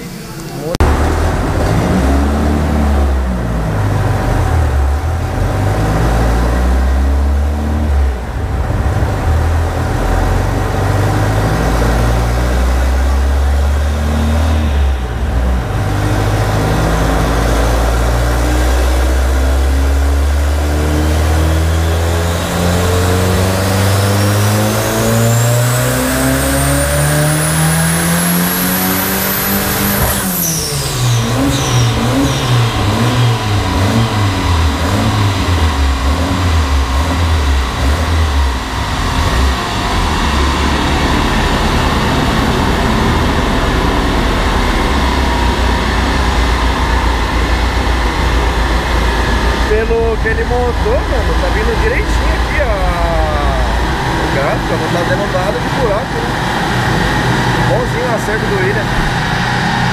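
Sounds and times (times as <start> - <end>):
car engine revving: 0.0 - 59.9
high whine: 0.0 - 59.9.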